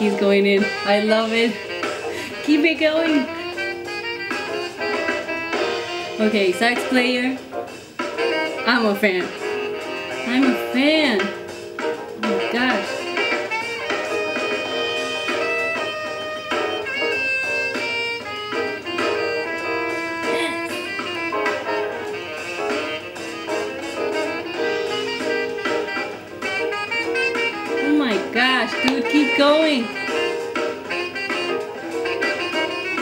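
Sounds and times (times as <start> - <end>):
saxophone solo: 0.0 - 6.3, 8.2 - 11.3, 12.1 - 33.0
jazz band playing: 0.0 - 33.0.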